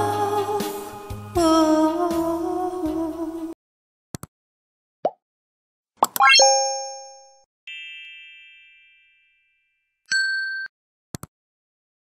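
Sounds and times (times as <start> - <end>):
short bright ding: 6.2 - 8.6
chime ringing: 6.2 - 10.6.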